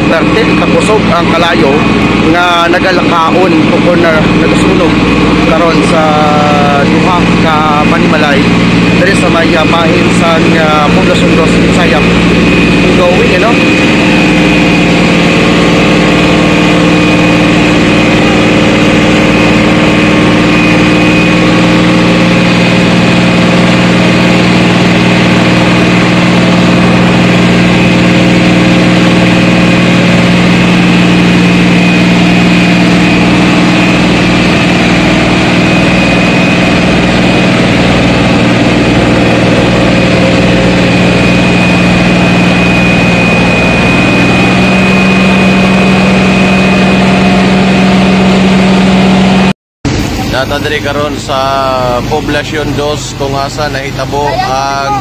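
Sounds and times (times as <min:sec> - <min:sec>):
large engine running loudly: 0:00.0 - 0:55.0.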